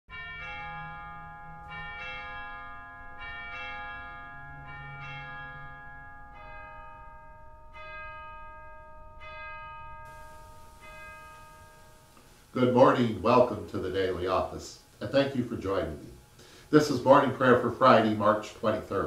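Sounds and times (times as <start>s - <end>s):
bells ringing at different pitches: 0.1s - 14.3s.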